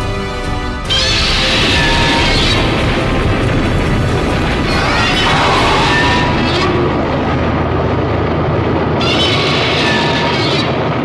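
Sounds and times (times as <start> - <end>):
explosion and fire rumble: 0.9 - 11.0.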